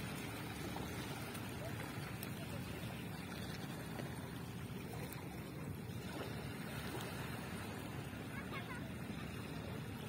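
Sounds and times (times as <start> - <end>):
waves lapping on pebble shore: 0.0 - 10.0.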